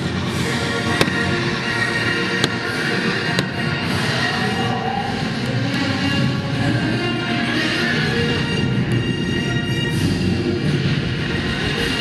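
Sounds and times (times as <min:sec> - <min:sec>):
show music: 0:00.0 - 0:12.0.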